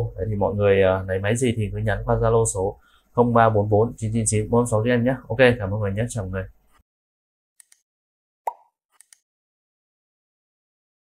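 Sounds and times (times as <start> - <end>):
mouse clicks: 7.6 - 7.8.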